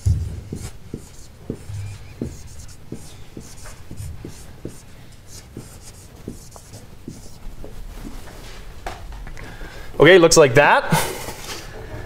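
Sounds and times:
marker writing on a whiteboard: 0.0s - 8.2s.

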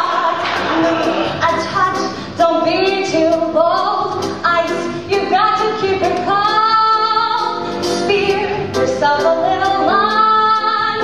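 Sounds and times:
woman singing: 0.0s - 0.6s, 1.4s - 11.0s
small band playing: 0.0s - 11.0s.

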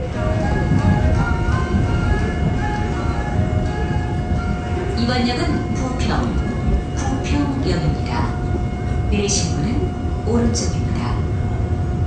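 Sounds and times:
subway train rumbling: 0.0s - 12.0s.

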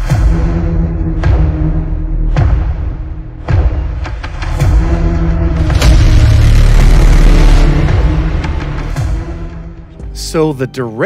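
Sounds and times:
dark horror-style music: 0.0s - 11.0s
heavy low rumble: 4.6s - 10.0s.

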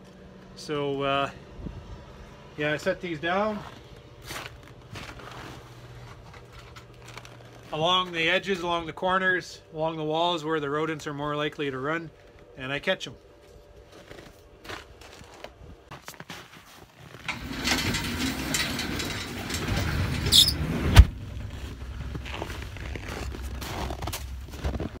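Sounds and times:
garage door rumbling: 17.1s - 24.1s
door squealing: 17.3s - 21.1s.

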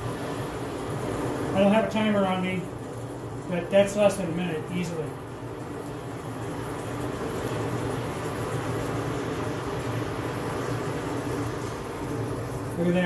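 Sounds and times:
forge blower rushing air: 0.0s - 13.0s.

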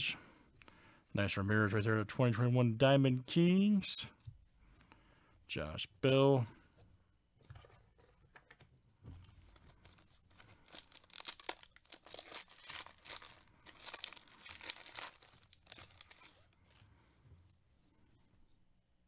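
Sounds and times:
foil wrapper tearing and crinkling: 9.8s - 16.5s.

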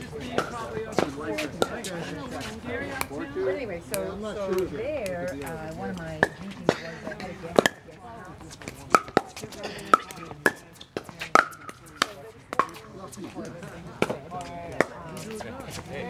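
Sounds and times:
paddles striking pickleball: 7.5s - 7.9s, 8.5s - 12.9s, 14.0s - 15.8s.

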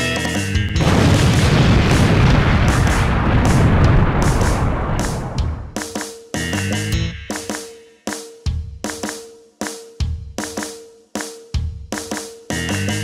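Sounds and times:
loud rumbling boom: 0.7s - 5.8s.

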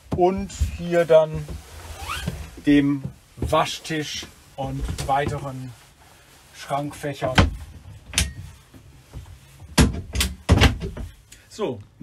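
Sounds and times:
wooden cabinet doors knocking shut: 9.8s - 11.1s.

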